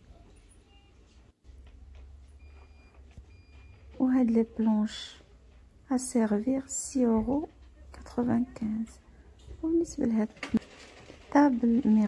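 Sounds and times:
faint electronic beeps: 0.0 - 1.3, 2.2 - 4.0.

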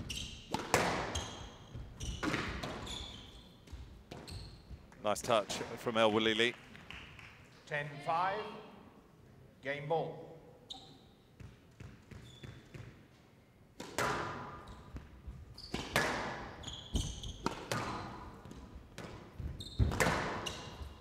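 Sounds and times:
shoes squeaking on court floor: 0.0 - 5.4, 10.6 - 13.0, 14.5 - 21.0
squash ball hitting rackets and walls: 0.0 - 5.7, 11.4 - 13.1, 13.7 - 21.0.

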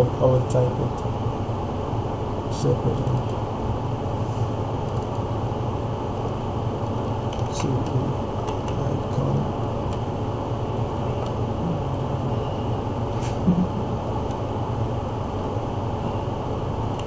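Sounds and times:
low background rumble: 0.0 - 17.0
short low thump: 13.2 - 13.8.

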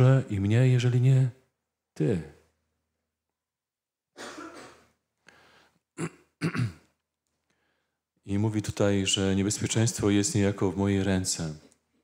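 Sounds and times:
man clearing his throat: 4.2 - 4.9, 6.0 - 7.0.

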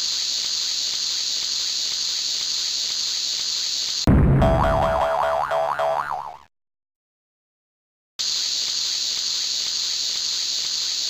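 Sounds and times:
cartoon boing sound effect: 4.1 - 6.5.

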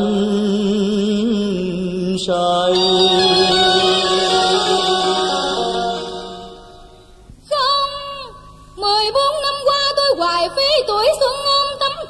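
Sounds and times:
woman singing with vibrato: 2.7 - 6.9.

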